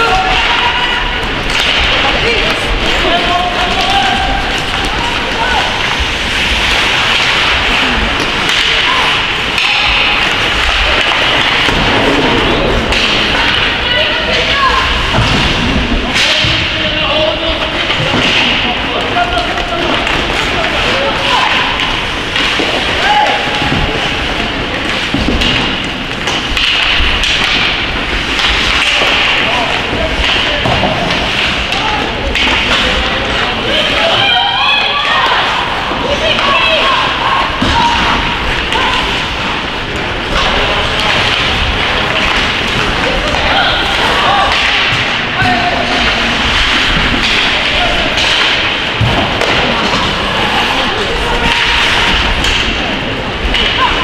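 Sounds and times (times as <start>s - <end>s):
sticks and puck hitting boards: 0.0s - 54.0s
skates scraping on ice: 0.2s - 16.2s
people calling out: 31.6s - 39.6s, 40.2s - 54.0s.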